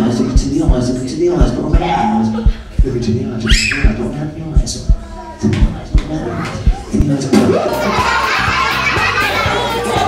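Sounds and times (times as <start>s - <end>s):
children shouting together: 7.6s - 10.0s.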